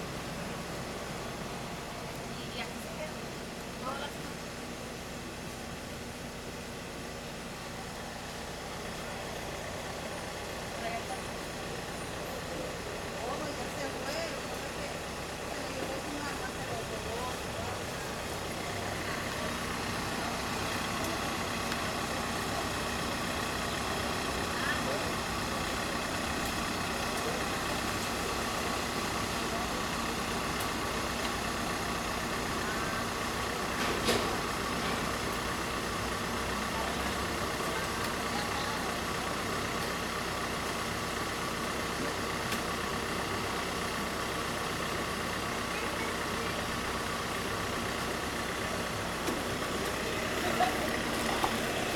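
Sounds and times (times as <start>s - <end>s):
vehicle engines humming: 0.0s - 51.9s
background voices: 10.7s - 51.9s.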